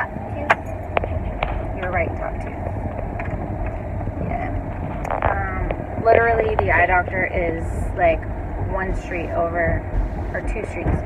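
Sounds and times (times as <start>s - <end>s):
road and engine rumble inside vehicle: 0.0s - 11.0s.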